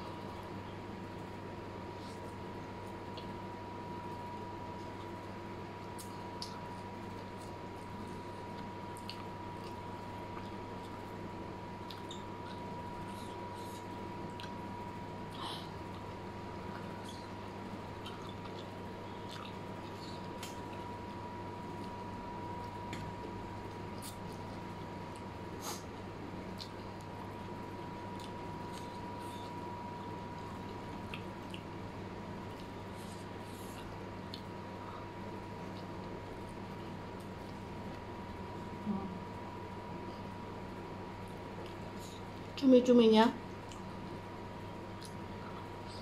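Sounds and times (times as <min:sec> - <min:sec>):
person chewing noodles: 0:04.8 - 0:38.0.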